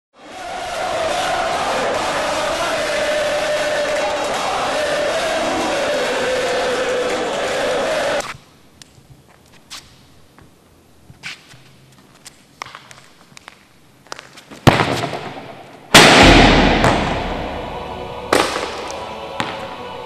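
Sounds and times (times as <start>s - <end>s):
crowd chanting: 0.2s - 8.2s, 16.1s - 20.0s.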